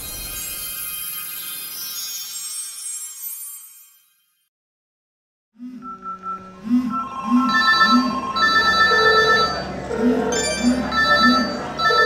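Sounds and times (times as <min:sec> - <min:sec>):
phone ringtones and alert tones: 0:05.8 - 0:12.0.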